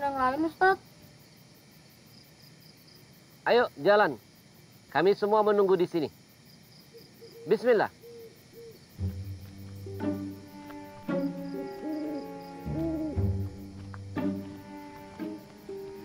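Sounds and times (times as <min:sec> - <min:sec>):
owl hooting: 0:06.9 - 0:16.0.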